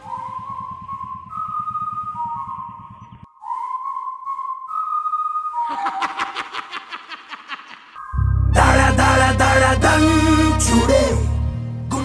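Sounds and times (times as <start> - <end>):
low rapid pulse: 0.0 - 5.3
full music: 8.2 - 12.0.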